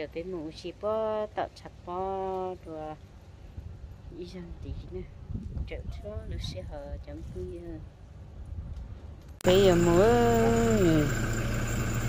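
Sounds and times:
car engine idling: 9.4 - 12.0.

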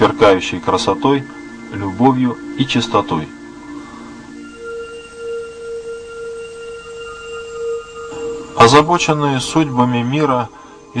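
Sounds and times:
sustained bell-like note: 0.0 - 11.0.

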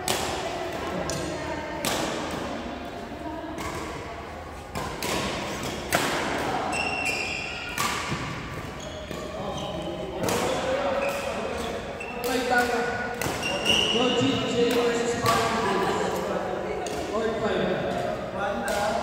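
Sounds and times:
rackets striking shuttlecock: 0.0 - 2.6, 4.7 - 9.3, 10.2 - 15.6, 17.8 - 19.0
murmur of voices: 0.0 - 19.0
shoes squeaking on court floor: 6.5 - 12.6, 13.2 - 14.6.

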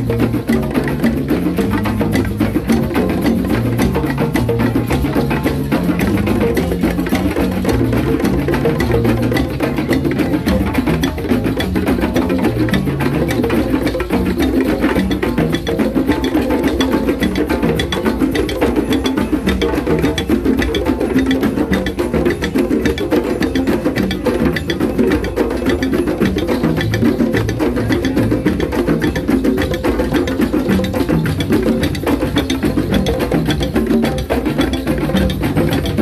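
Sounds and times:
hand drums playing: 0.0 - 36.0.

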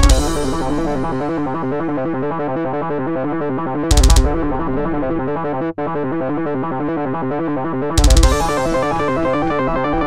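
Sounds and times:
square-wave synth lead: 0.0 - 1.6, 8.0 - 10.0
drum track: 0.0 - 1.8, 3.9 - 5.1, 8.0 - 9.3
synth bass: 0.0 - 2.2, 3.8 - 5.7, 7.8 - 10.0.

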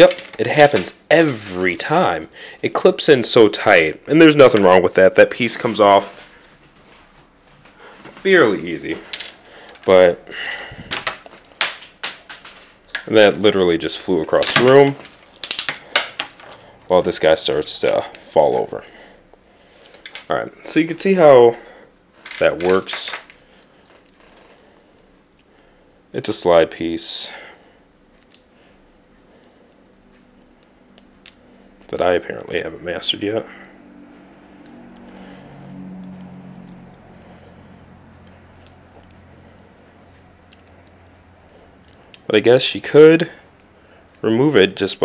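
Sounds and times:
low steady hum: 0.0 - 45.0.

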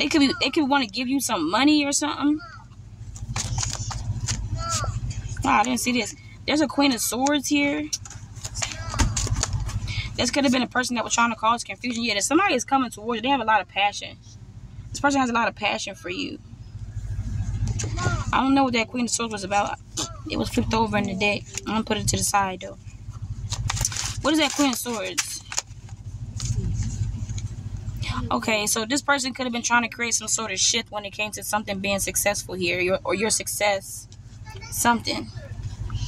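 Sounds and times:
car engine idling: 0.0 - 36.0
cards rustling and shuffling: 3.1 - 5.4, 8.0 - 9.9, 23.1 - 27.8.

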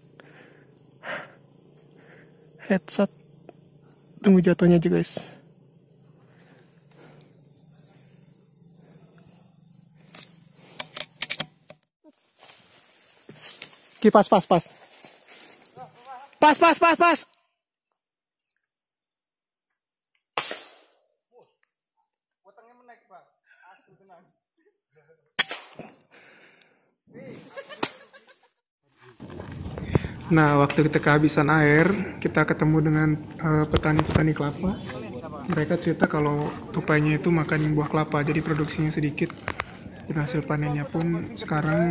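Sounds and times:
thin high whines: 0.0 - 11.7
air rifle sharp crack: 20.4 - 20.9, 25.4 - 25.8.

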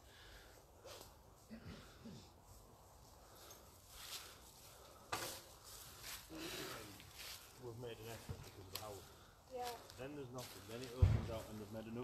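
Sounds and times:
footsteps in dry leaves: 2.6 - 12.0.

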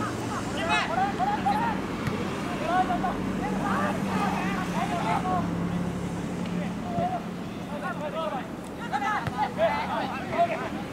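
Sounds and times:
soccer players shouting: 0.0 - 5.9, 6.6 - 10.9.

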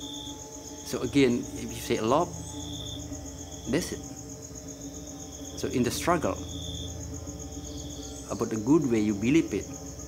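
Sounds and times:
crickets chirping: 0.0 - 10.0
low hum: 0.0 - 10.0.

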